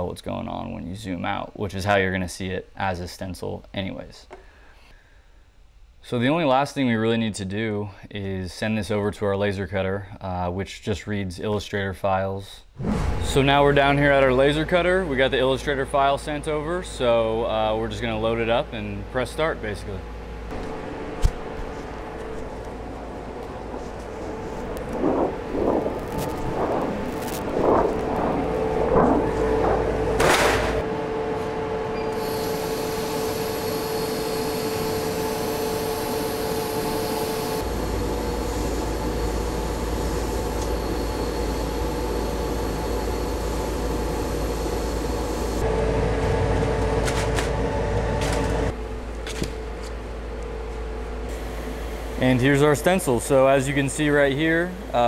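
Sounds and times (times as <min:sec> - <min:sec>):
laser cutter machine hum: 0:14.1 - 0:55.0.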